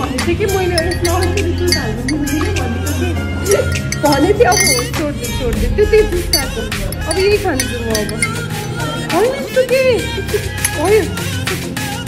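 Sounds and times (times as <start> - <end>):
teaspoon clinking against glass: 0.0 - 2.8, 3.5 - 5.0, 6.3 - 8.4
background music with singing: 0.0 - 12.0.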